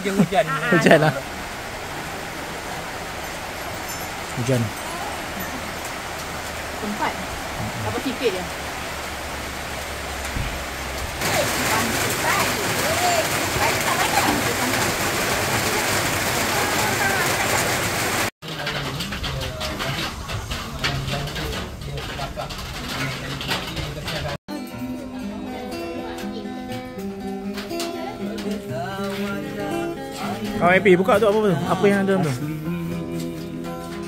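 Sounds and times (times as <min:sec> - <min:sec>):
guitar music: 0:00.0 - 0:01.7, 0:24.5 - 0:34.0
background voices: 0:00.0 - 0:24.4, 0:27.6 - 0:34.0
heavy rain: 0:00.0 - 0:24.4
light clatter: 0:18.4 - 0:24.4.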